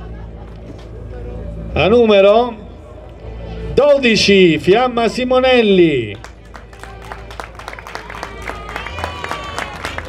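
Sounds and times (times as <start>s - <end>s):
crowd voices: 0.0s - 10.0s
audience applauding: 6.2s - 10.0s.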